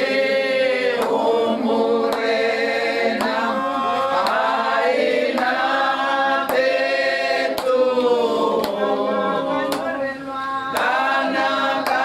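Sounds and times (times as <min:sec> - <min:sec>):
women singing a hymn: 0:00.0 - 0:12.0
sharp hand clap: 0:00.9 - 0:01.3, 0:02.0 - 0:02.5, 0:03.1 - 0:05.8, 0:06.4 - 0:08.9, 0:09.6 - 0:10.1, 0:10.7 - 0:12.0.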